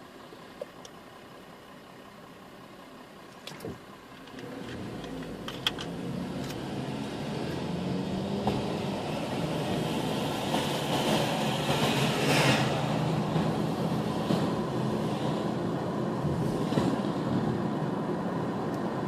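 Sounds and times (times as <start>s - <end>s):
car engine hum and road noise: 0.0s - 19.0s.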